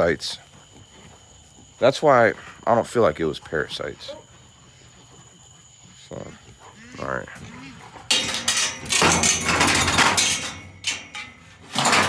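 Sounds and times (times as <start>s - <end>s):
hard objects rattling and clattering: 7.9s - 12.0s.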